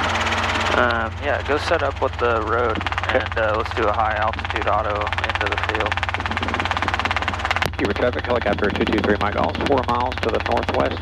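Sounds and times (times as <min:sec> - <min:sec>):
helicopter rotor and engine drone: 0:00.0 - 0:11.0
person speaking: 0:00.6 - 0:11.0.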